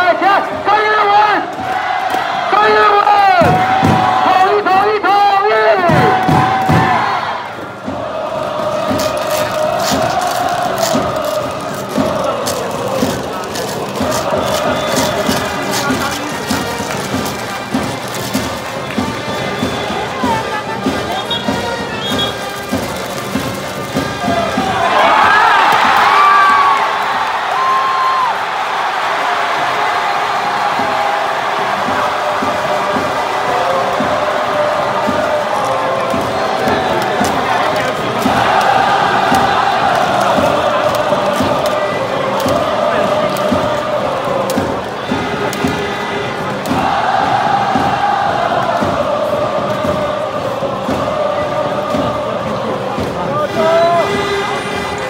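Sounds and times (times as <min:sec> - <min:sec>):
crowd chanting and cheering: 0:00.0 - 0:55.0
steady drum thumps: 0:01.4 - 0:04.6, 0:05.7 - 0:55.0.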